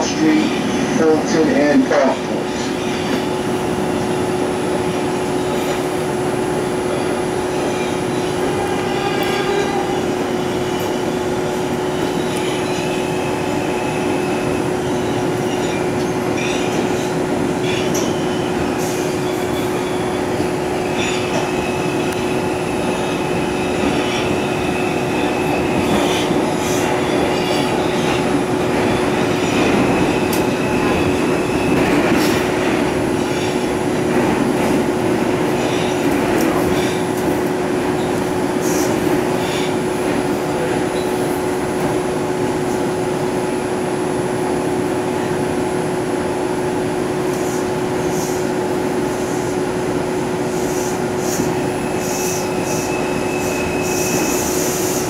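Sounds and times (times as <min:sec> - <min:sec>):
subway car rumble: 0:00.0 - 0:55.0.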